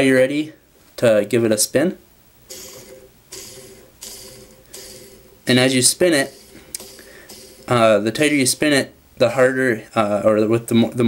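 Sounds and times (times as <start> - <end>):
spinner hissing whir: 2.5 - 8.9.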